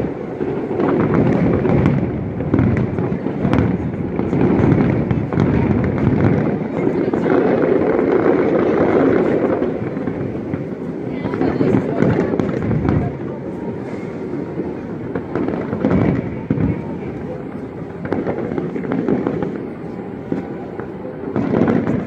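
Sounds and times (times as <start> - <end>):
fireworks booming and crackling: 0.0 - 22.0.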